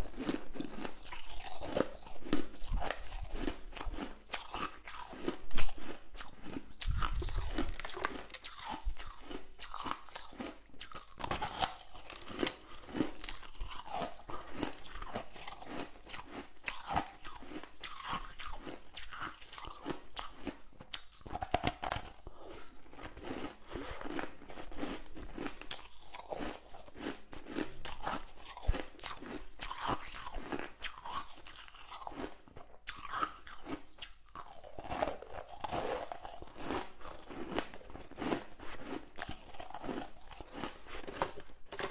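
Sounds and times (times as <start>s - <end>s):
ice being chewed: 0.0s - 41.9s.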